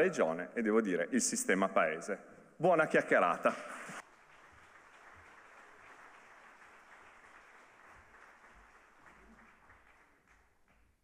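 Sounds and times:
faint audience applause: 4.0s - 11.0s.

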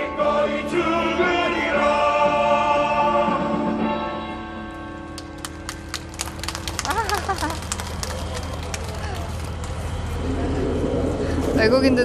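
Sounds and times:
crowd clapping: 5.1s - 10.3s.

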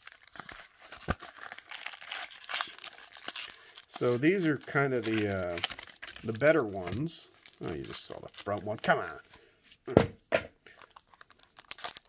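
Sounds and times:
wrapper crinkling and tearing: 0.0s - 9.2s, 10.7s - 12.0s.

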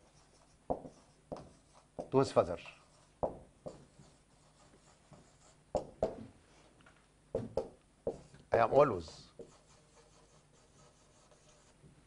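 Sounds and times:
marker pen writing on whiteboard: 0.0s - 6.3s, 7.4s - 11.9s
person speaking: 2.0s - 3.1s, 8.1s - 11.7s.

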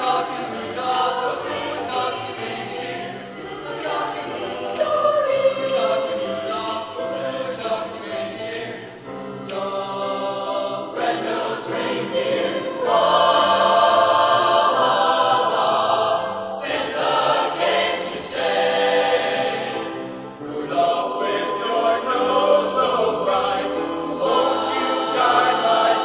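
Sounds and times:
mixed choir singing in parts: 0.0s - 26.0s.

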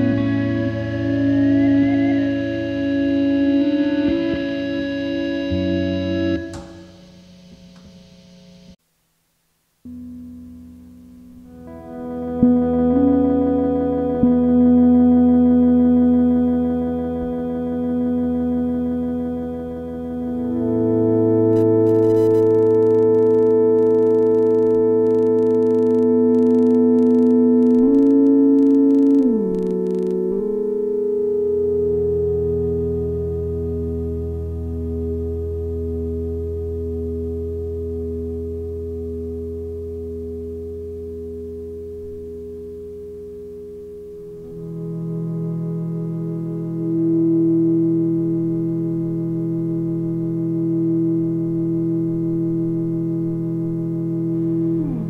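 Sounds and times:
electric guitar drone: 0.0s - 8.8s, 9.8s - 55.0s.

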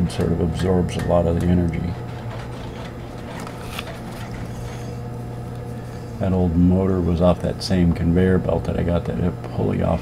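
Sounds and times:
electric motor humming: 0.0s - 9.9s.

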